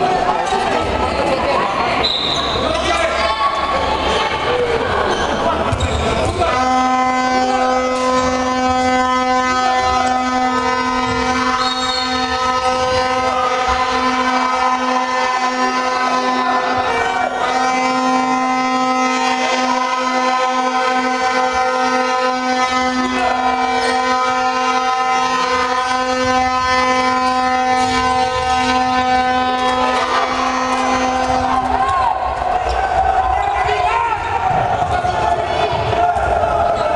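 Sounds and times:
crowd voices: 0.0 - 36.9
ball bouncing on court: 5.6 - 6.4
horn long held note: 6.4 - 32.2.

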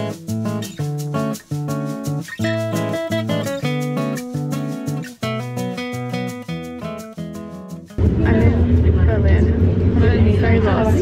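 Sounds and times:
passenger train rumbling: 8.0 - 11.0.

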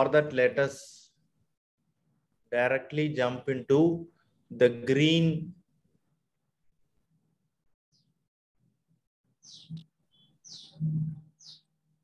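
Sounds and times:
birds chirping: 9.3 - 12.0.

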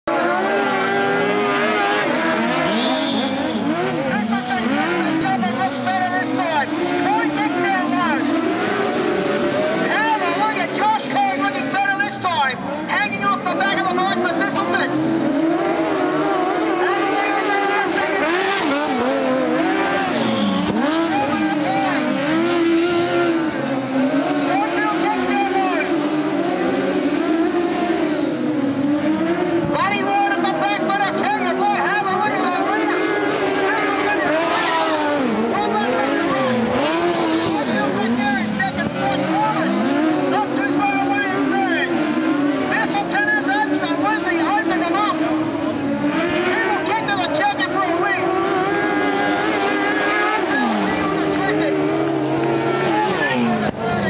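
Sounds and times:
racing engines revving: 0.0 - 54.0.

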